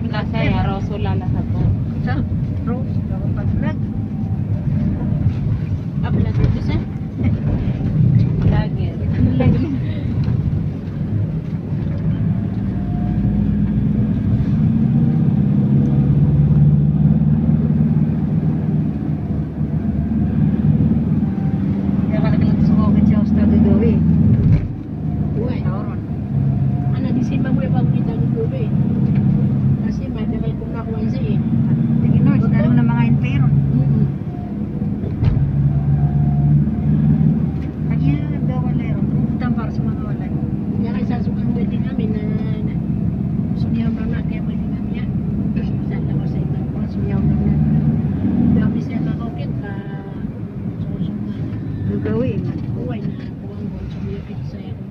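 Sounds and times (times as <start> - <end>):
road noise: 0.0 - 54.9
vehicle engine hum: 0.0 - 54.9.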